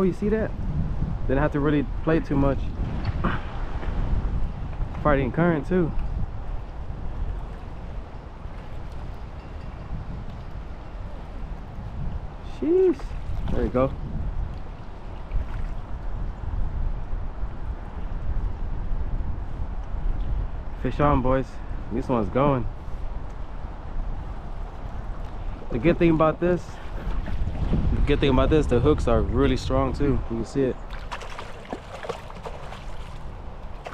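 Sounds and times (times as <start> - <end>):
wind buffeting microphone: 0.0 - 33.9.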